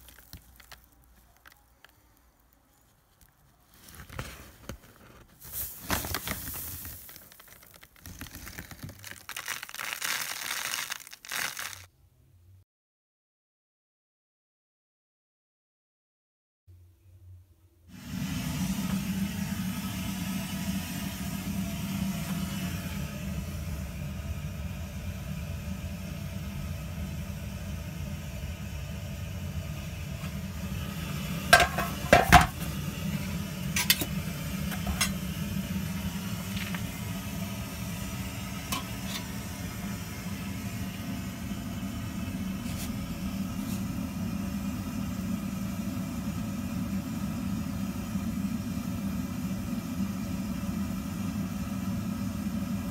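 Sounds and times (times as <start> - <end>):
pump humming: 17.9 - 52.9.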